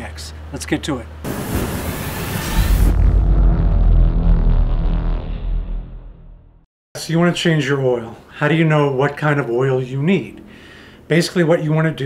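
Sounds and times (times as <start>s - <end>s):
hissing whoosh: 1.3s - 5.8s
deep bass boom: 1.3s - 6.7s.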